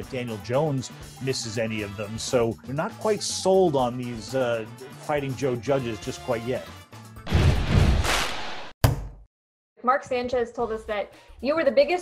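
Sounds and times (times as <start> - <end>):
sharp hit: 7.3 - 8.7.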